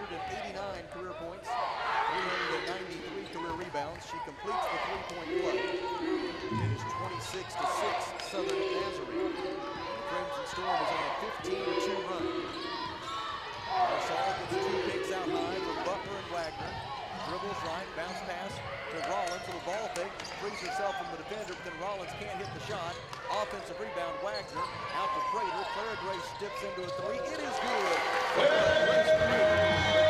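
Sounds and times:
murmur of voices in a gym: 0.0s - 30.0s
sneakers squeaking on floor: 24.0s - 27.9s.

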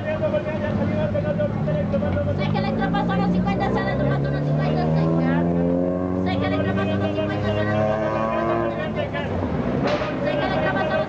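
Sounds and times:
street voices: 0.0s - 11.0s
vehicle engine accelerating: 0.0s - 11.0s.

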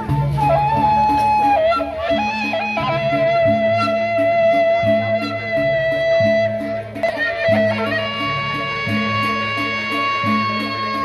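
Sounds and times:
high wind instrument melody: 0.0s - 11.0s
low repeating percussion figure: 0.0s - 11.0s.

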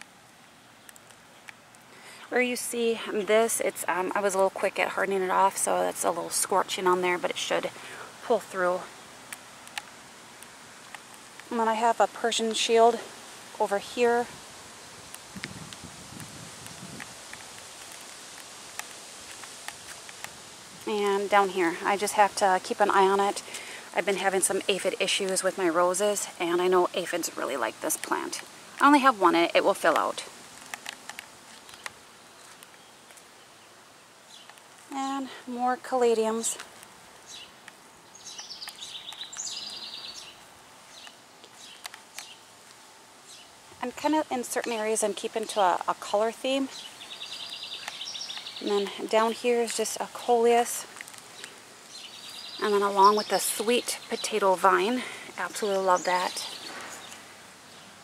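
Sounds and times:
outdoor hiss: 0.0s - 58.0s
songbird trilling: 37.3s - 42.4s, 46.6s - 50.7s, 51.4s - 57.9s
faint high ticks: 47.4s - 48.6s.

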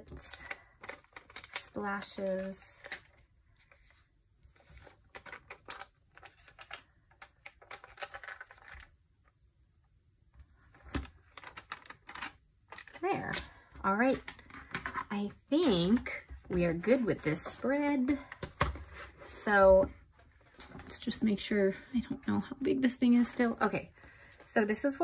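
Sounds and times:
paper and stickers rustling: 0.0s - 8.9s, 10.4s - 25.0s.

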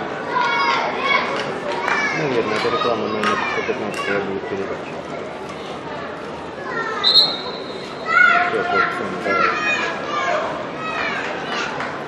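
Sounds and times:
crowd noise: 0.0s - 12.0s.

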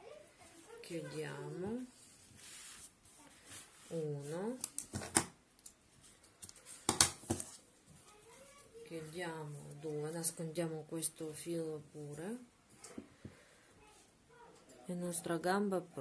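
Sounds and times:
yarn rustling: 0.0s - 4.6s.

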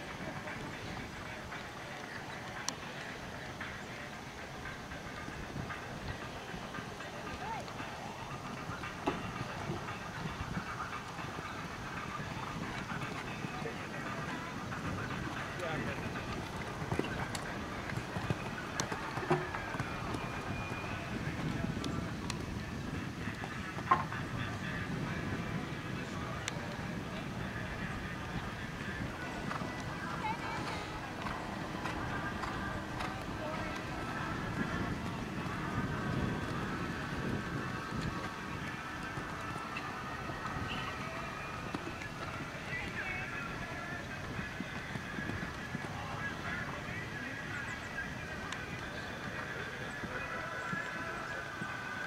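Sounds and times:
distant indistinct voices: 0.0s - 52.0s
muffled hoofbeats on sand: 0.0s - 52.0s.

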